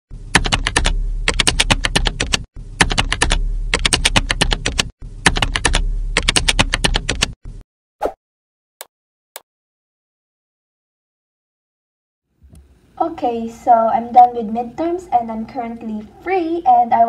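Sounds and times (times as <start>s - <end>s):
low hum: 0.1s - 1.5s, 2.6s - 4.4s, 5.0s - 6.5s
keyboard typing: 0.4s - 7.4s.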